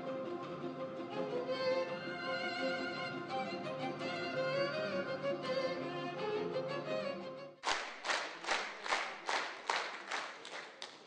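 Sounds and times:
audience clapping in unison: 0:07.6 - 0:11.0.

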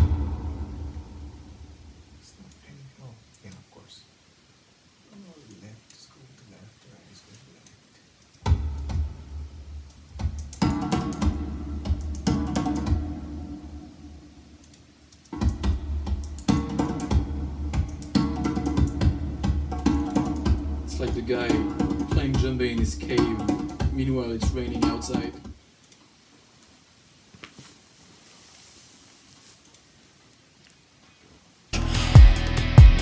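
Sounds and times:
faint sparse sounds: 0:00.0 - 0:08.5.

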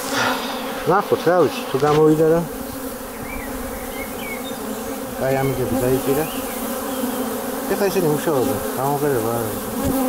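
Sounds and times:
bees buzzing: 0:00.0 - 0:10.0.

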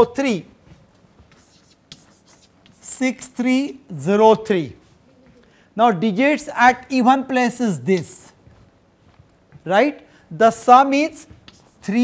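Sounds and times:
chalk tapping on blackboard: 0:01.2 - 0:03.3, 0:11.1 - 0:12.0.

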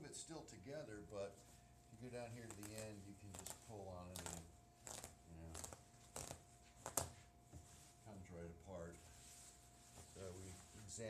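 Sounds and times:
canvas rustling and scraping: 0:02.0 - 0:11.0.

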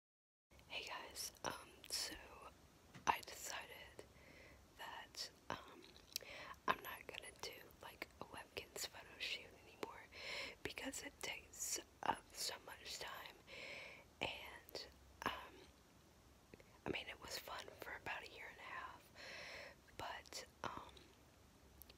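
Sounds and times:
person whispering: 0:00.7 - 0:02.5, 0:03.1 - 0:04.0, 0:04.8 - 0:13.5, 0:14.2 - 0:15.7, 0:16.9 - 0:19.1, 0:20.0 - 0:21.2.

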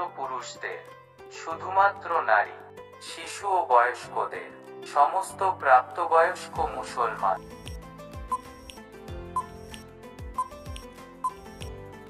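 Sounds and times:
background music sustained notes: 0:00.0 - 0:12.0
countdown timer ticking: 0:06.6 - 0:11.8.

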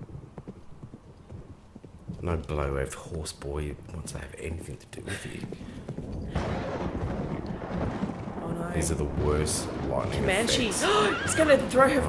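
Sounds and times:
horse hoofbeats on dirt: 0:00.0 - 0:12.0.

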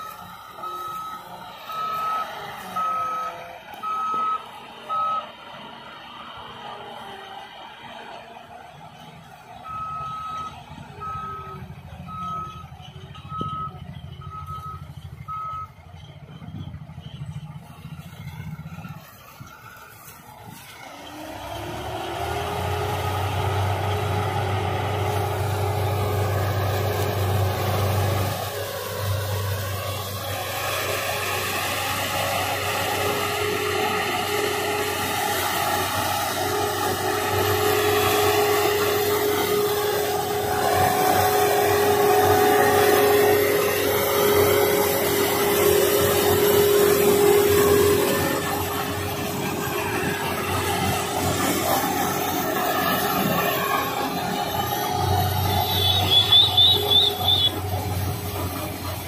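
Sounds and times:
engine rumble: 0:00.0 - 0:59.0.

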